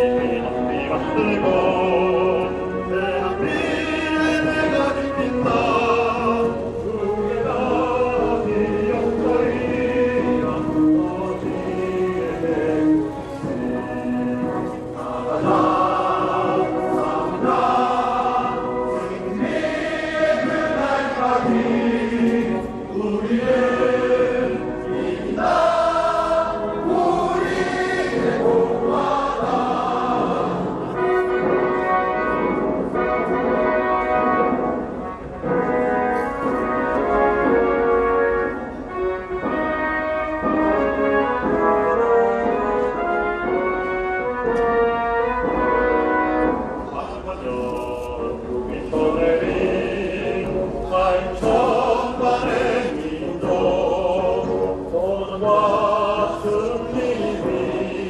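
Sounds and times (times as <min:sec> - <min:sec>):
music: 0:00.0 - 0:58.0
choir singing: 0:03.2 - 0:31.6, 0:46.9 - 0:58.0.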